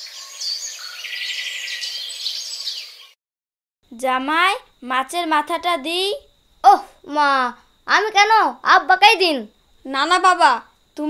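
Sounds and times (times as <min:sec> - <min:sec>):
small birds chirping: 0:00.0 - 0:03.2.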